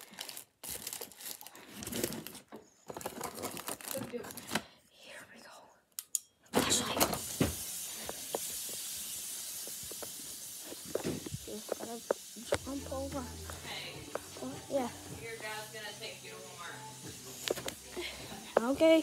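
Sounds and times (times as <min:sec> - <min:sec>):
steady hiss: 0:06.6 - 0:19.0.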